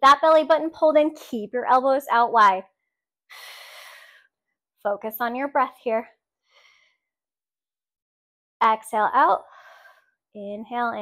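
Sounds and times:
woman breathing out: 3.3s - 4.3s.

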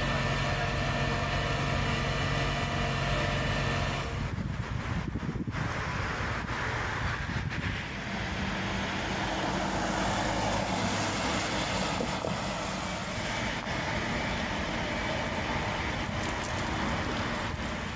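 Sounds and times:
road traffic noise: 0.0s - 17.9s
vehicle driving past: 5.8s - 17.9s.

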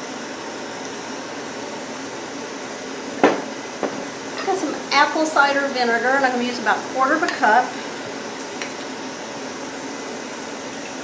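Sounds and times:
fan-like room noise hiss: 0.0s - 11.0s.

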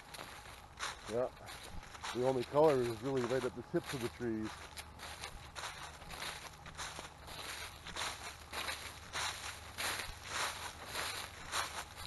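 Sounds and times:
footsteps crunching dry leaves: 0.0s - 12.0s.

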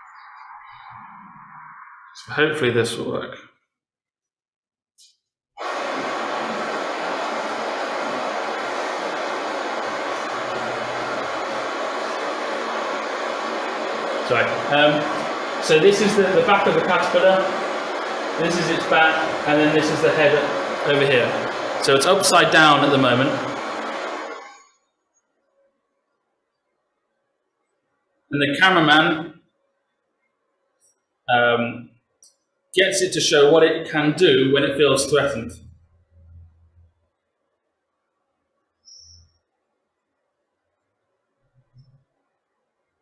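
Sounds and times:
steady rushing hiss: 5.6s - 24.7s, 32.9s - 35.7s
man's voice: 18.4s - 23.6s, 32.8s - 35.6s.

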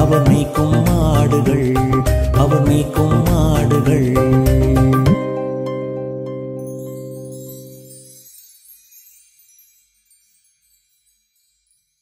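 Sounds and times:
faint high chime tones: 6.6s - 12.0s.

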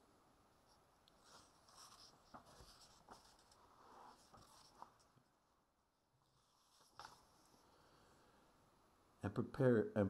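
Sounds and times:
book pages flipping: 1.1s - 5.2s, 6.3s - 7.6s
soft paper ticks: 6.7s - 7.5s.

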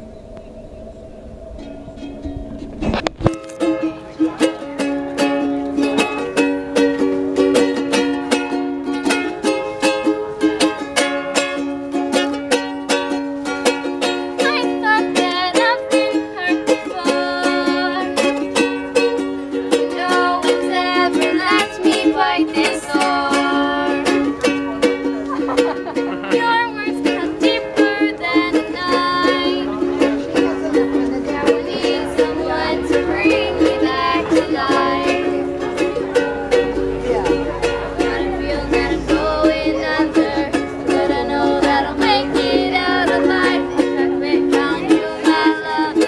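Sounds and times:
ukuleles strumming: 0.0s - 46.0s.

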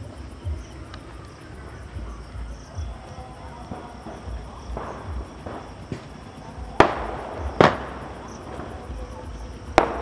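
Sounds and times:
firecracker bangs: 3.6s - 10.0s.

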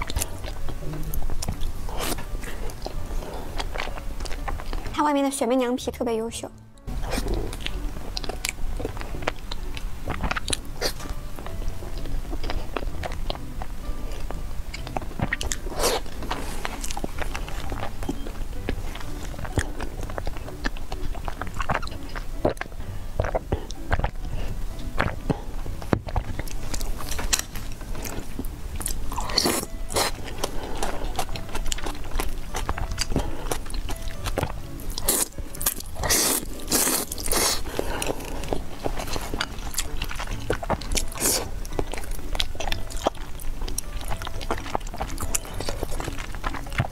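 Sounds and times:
chewing sticky food: 0.0s - 5.0s, 6.8s - 46.9s
noodles slurped: 34.8s - 46.9s.

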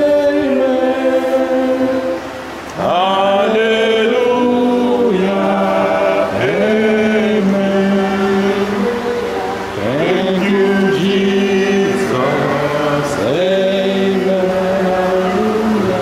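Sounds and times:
congregation singing: 0.0s - 16.0s.

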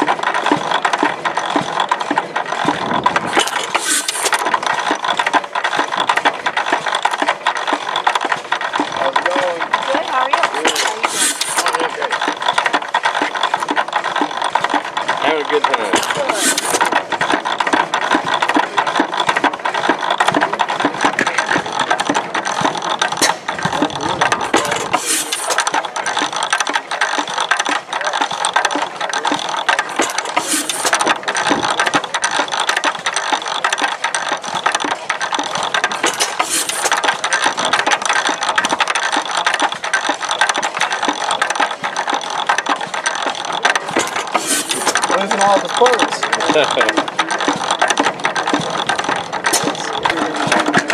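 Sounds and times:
gas engine mechanical clatter: 0.0s - 50.9s.

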